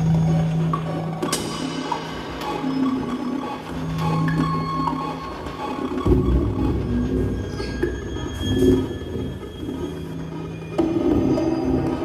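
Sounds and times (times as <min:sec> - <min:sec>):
dense low electronic layer: 0:00.0 - 0:12.0.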